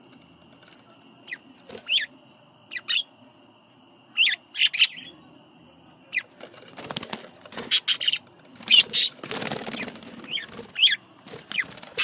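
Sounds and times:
faint high whine: 0.0 - 12.0
budgerigars chirping: 1.3 - 2.1, 2.7 - 3.1, 4.1 - 5.2, 7.6 - 12.0.

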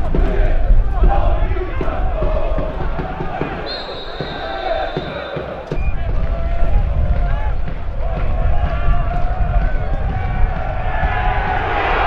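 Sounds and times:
stadium crowd shouting: 0.0 - 12.0
referee's whistle: 3.6 - 6.1.

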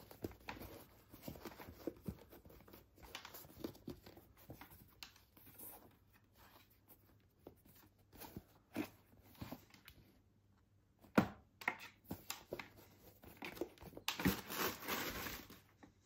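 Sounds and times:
packing paper crinkling: 13.6 - 15.8.

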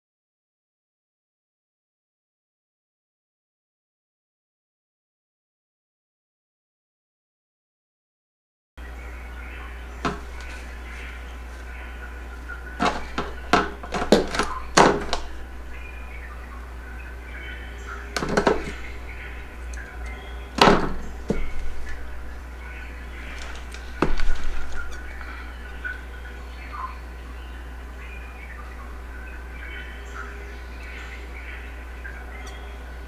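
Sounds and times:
steady low hum: 8.8 - 33.0.

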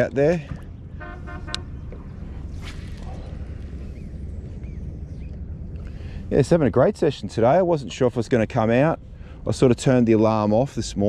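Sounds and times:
steady low rumble: 0.0 - 11.0
whoosh of a cast: 2.3 - 4.1.

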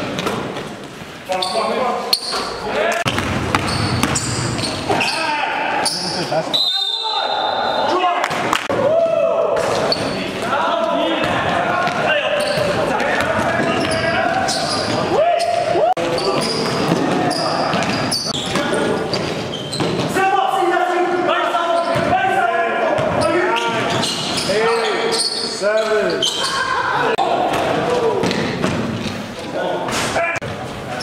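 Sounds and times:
basketball bouncing on gym floor: 3.1 - 4.8
players shouting: 3.7 - 19.0, 20.1 - 28.6.

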